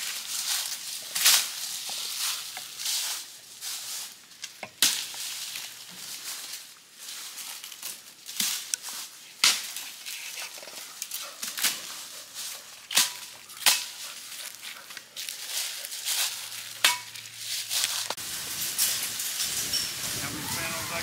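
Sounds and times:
dry leaves crunching and snapping: 0.0 - 21.0.

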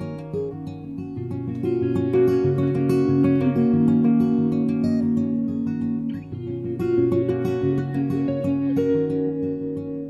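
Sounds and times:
acoustic guitar playing chords: 0.0 - 10.0.

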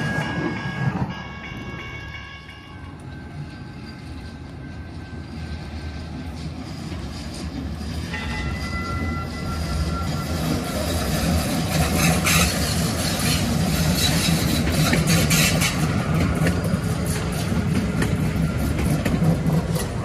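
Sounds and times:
light rail train rumbling past: 0.0 - 20.0
sharp train clicks: 6.4 - 20.0.

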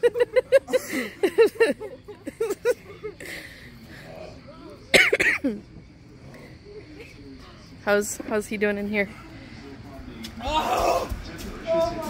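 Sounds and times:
people laughing: 0.0 - 4.1
person coughing: 4.9 - 5.6.

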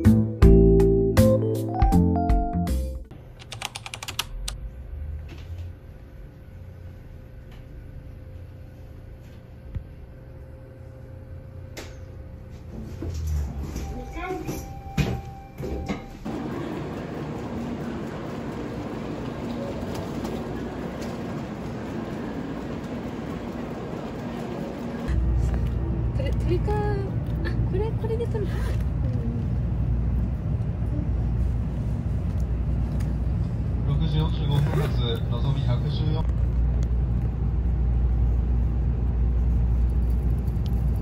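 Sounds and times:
rumbling train platform ambience: 3.2 - 41.0.

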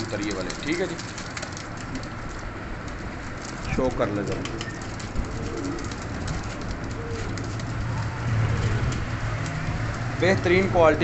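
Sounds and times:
pigeons cooing: 4.3 - 9.5.

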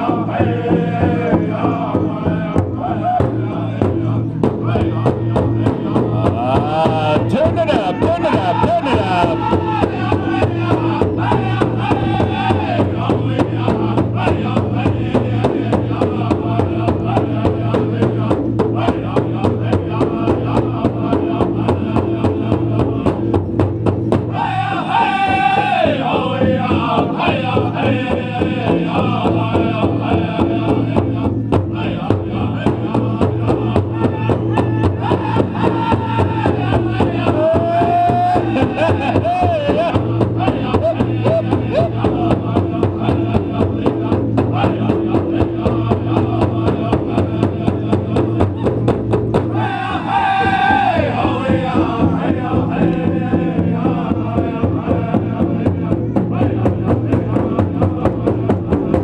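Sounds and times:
high lead voice singing: 0.0 - 23.4, 24.1 - 59.0
group chanting: 0.0 - 59.0
large drum beating: 0.0 - 59.0.

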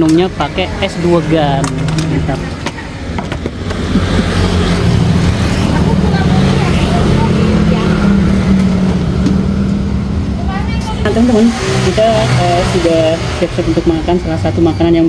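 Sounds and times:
vehicle engine running: 0.0 - 15.0
faint voices: 4.0 - 8.9.

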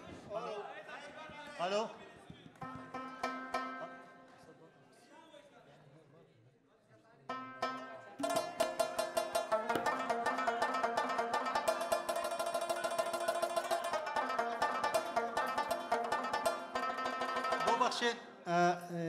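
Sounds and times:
rubab fast plucked notes: 2.6 - 4.2, 7.3 - 18.2.

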